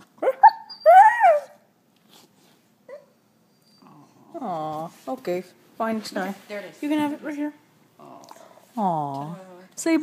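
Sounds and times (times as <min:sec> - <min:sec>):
dog yelping and whining: 0:00.2 - 0:01.7.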